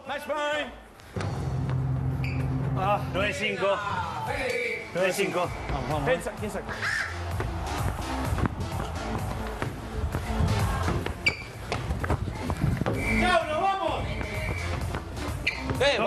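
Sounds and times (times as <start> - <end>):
background music: 1.0 - 16.0.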